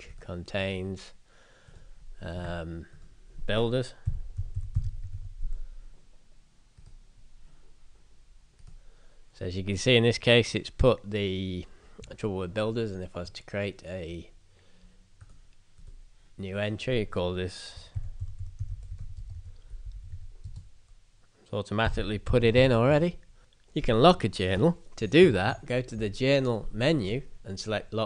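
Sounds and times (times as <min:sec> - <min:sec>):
low room hum: 0:00.0 - 0:28.0
typing on a keyboard: 0:04.0 - 0:05.3, 0:18.0 - 0:20.7.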